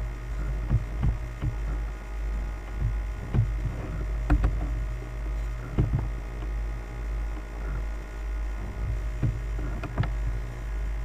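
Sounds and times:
electrical mains hum: 0.0 - 11.0
soft short thumps: 0.4 - 1.9, 2.6 - 4.8, 5.5 - 6.6, 8.6 - 10.4.

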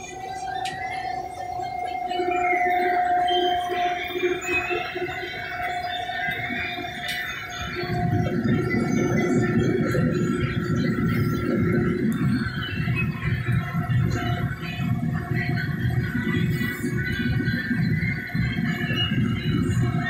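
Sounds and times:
combine harvester machinery whine: 0.0 - 20.0.

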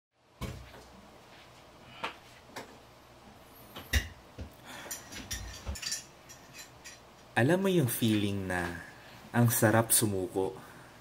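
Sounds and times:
faint room hum: 0.2 - 11.0.

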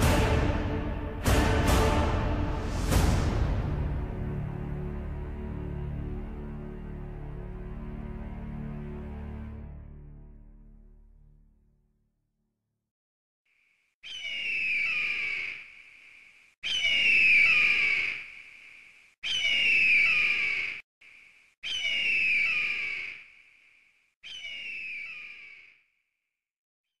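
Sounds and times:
eagle screaming: 14.0 - 15.7, 16.6 - 18.3, 19.2 - 20.8, 21.6 - 23.2.

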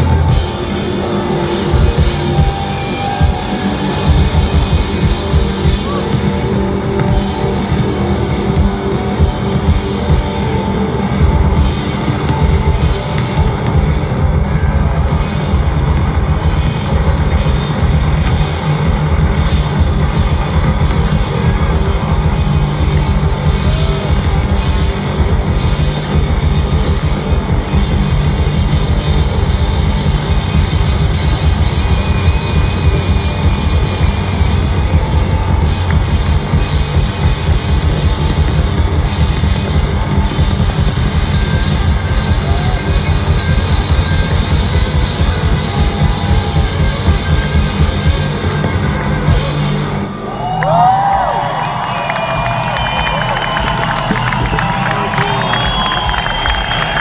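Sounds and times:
live rock band playing: 0.0 - 57.0.

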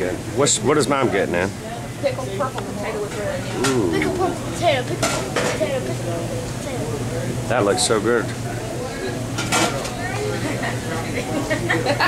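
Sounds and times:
steady low hum: 1.9 - 7.5
background voices: 3.4 - 4.5.

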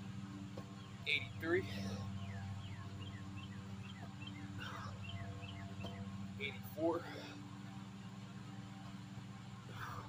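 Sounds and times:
steady low hum: 0.0 - 10.0
bird chirping: 0.6 - 6.7.

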